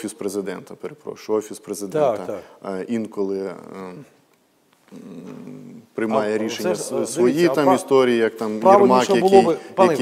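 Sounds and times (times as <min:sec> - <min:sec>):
man humming hesitation sound: 0:04.8 - 0:06.0.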